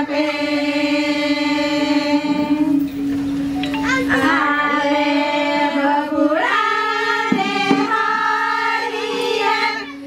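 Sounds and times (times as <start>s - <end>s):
voices singing long note: 0.0s - 10.0s.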